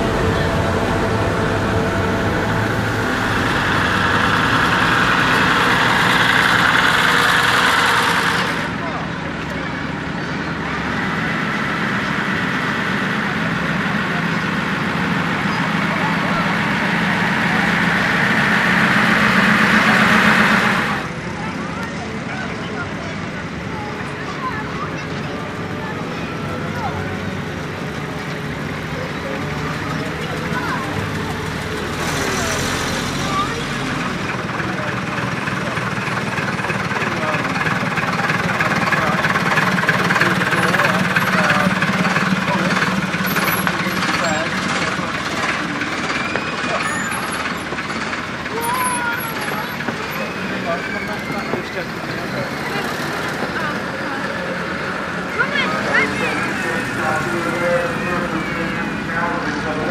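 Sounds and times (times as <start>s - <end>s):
people chattering: 0.0s - 59.9s
vehicle engines driving past: 0.0s - 59.9s.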